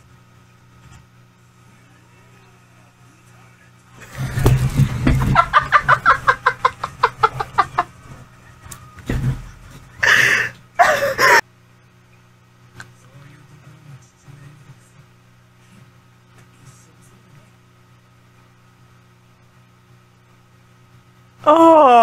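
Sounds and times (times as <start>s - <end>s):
woman laughing hard: 5.2s - 7.9s, 10.0s - 11.4s
low thump: 9.0s - 9.6s.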